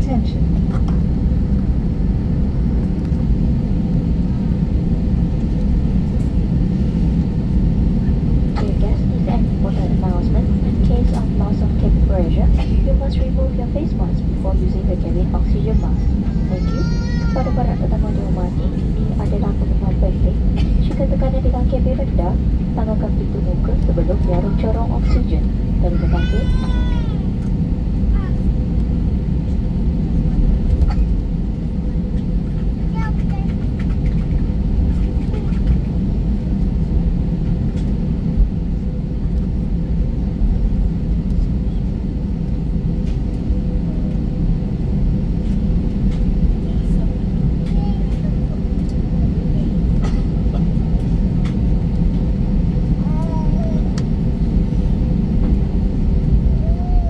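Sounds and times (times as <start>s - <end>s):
low aircraft cabin rumble: 0.0s - 57.0s.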